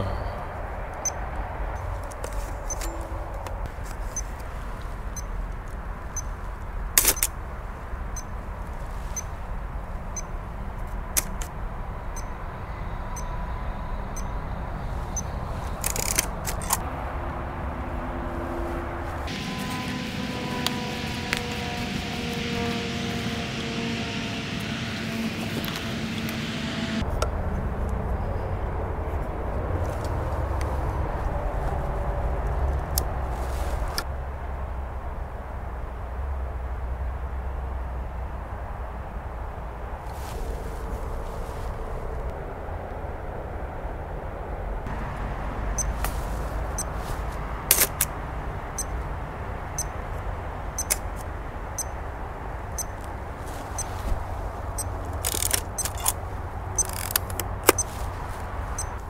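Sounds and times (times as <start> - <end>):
passing vehicle engine hum: 0.0 - 59.0.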